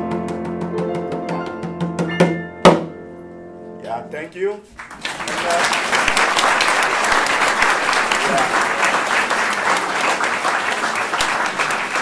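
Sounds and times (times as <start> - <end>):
grand piano chords: 0.0 - 4.4.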